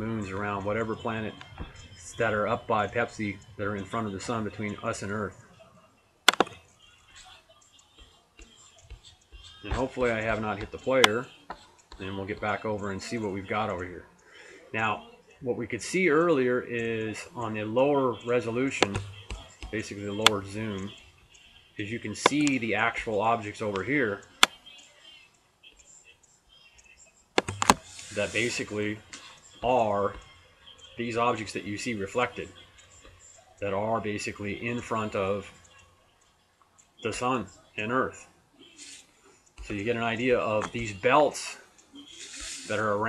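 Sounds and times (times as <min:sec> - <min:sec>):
man speaking: 0:00.0 - 0:05.4, 0:09.6 - 0:11.4, 0:12.0 - 0:14.1, 0:14.7 - 0:21.0, 0:21.8 - 0:24.5, 0:27.4 - 0:30.2, 0:31.0 - 0:32.6, 0:33.6 - 0:35.6, 0:37.0 - 0:38.3, 0:39.6 - 0:41.7, 0:42.6 - 0:43.0
faint room hiss: 0:00.0 - 0:43.0
computer mouse button click: 0:06.3 - 0:06.5
sharp clicks: 0:06.3 - 0:06.8, 0:27.4 - 0:28.2.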